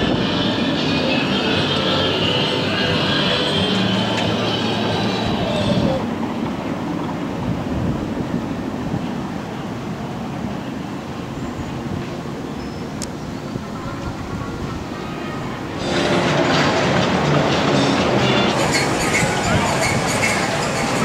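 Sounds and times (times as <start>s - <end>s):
amusement park ambience rumble: 0.0s - 21.0s.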